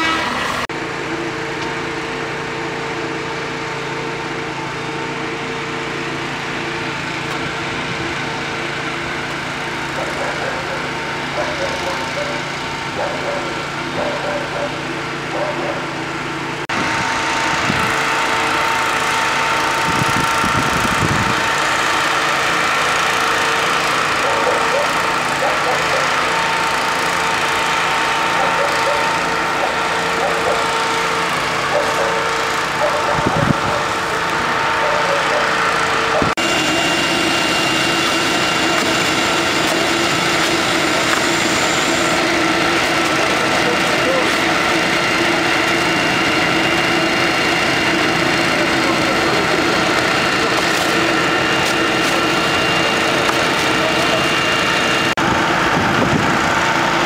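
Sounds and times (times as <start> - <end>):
fire engines running: 0.0 - 57.0
indistinct voices: 38.6 - 45.1.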